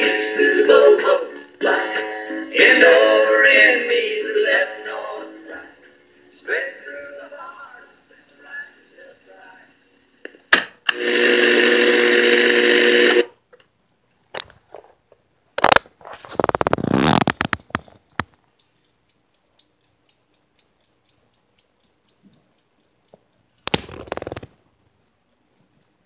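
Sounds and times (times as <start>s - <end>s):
rattle of clicks: 19.6s - 24.6s.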